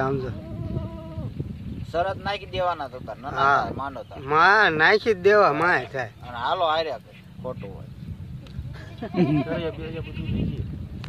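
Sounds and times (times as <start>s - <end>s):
goat bleating: 0.0s - 1.3s, 8.7s - 10.7s.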